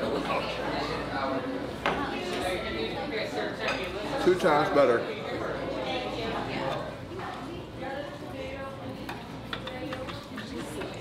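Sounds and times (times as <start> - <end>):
murmured talk: 0.0 - 11.0
cutlery clicking on plates: 9.0 - 11.0.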